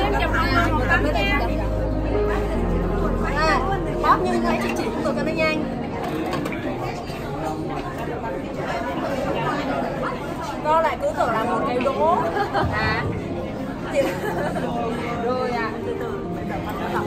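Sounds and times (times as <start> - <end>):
chatter of people talking: 0.0 - 17.0.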